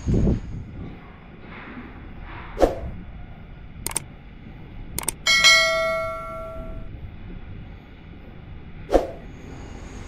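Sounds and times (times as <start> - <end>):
mouse clicks: 3.9 - 4.1, 5.0 - 5.2
bright bell ding: 5.3 - 6.9.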